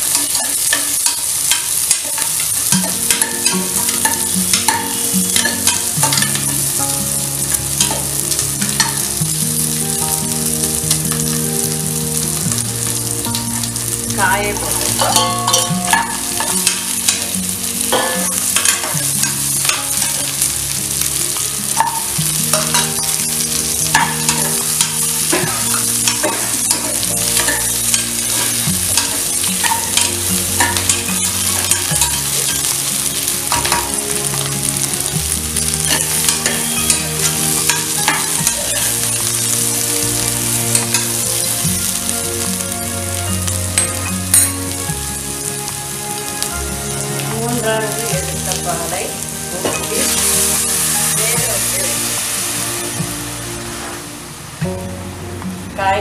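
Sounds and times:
vegetables sizzling in a pot: 0.0s - 56.0s.

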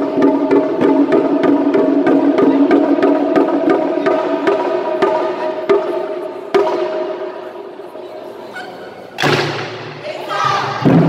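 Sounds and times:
taiko drums unison hits: 0.0s - 7.2s, 9.2s - 10.0s, 10.6s - 11.0s.

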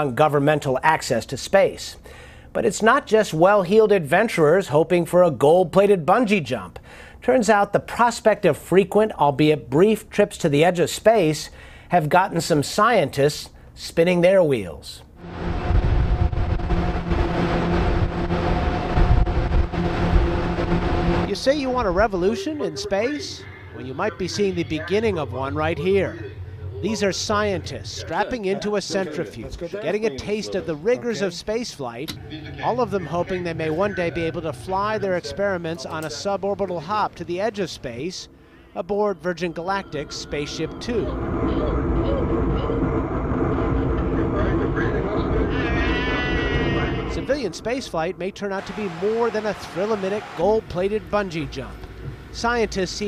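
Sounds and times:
centrifuge rumbling: 15.1s - 29.5s, 32.0s - 53.0s
drive humming: 15.2s - 31.4s, 32.0s - 53.0s.

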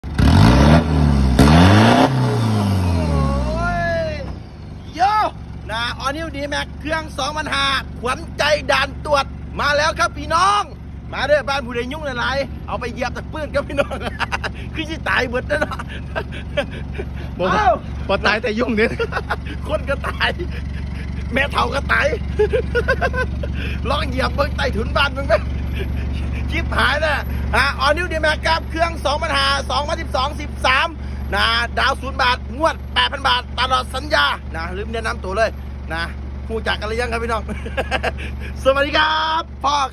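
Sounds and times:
diesel engine revving: 0.0s - 39.9s
man laughing: 13.2s - 27.8s, 37.1s - 39.0s.

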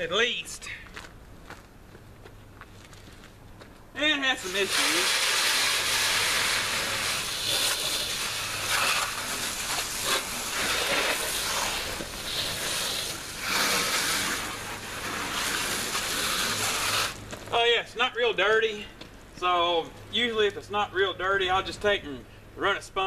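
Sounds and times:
hose nozzle spraying water: 4.2s - 17.3s.

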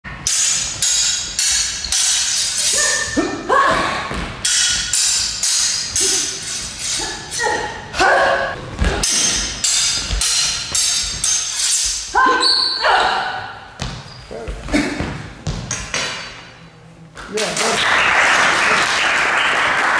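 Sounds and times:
sword blades clashing: 0.2s - 13.6s.

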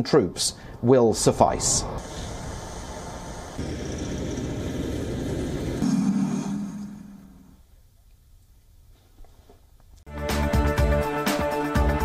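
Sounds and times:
military vehicle engine rumble: 2.0s - 5.8s.

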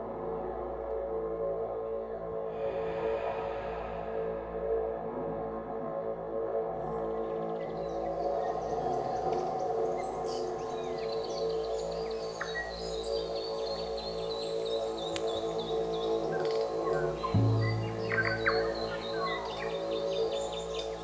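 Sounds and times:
ambient drone music: 0.0s - 21.0s
birds chirping: 7.3s - 21.0s.

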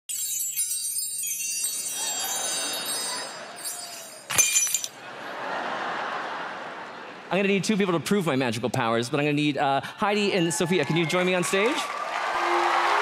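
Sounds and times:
sharp glassy clink: 0.1s - 5.0s
shimmering chime tones: 0.1s - 5.0s
audience crowd noise: 2.0s - 4.3s, 5.0s - 8.1s, 10.0s - 13.0s.

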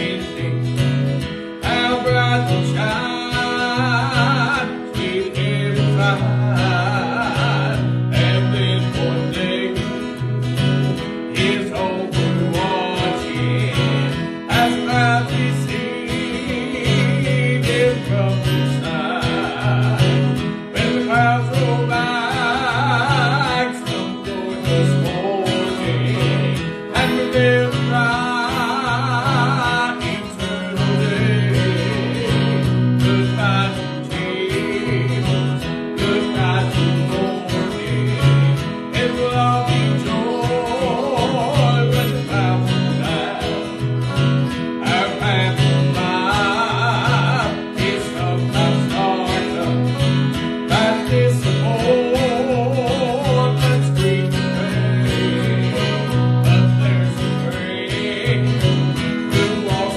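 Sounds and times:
acoustic guitar: 0.0s - 59.9s
man singing with vibrato: 0.0s - 59.9s.

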